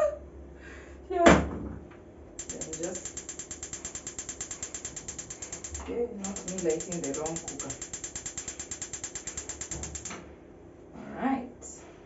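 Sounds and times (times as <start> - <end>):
gas cooker igniter clicking: 2.4 - 10.2.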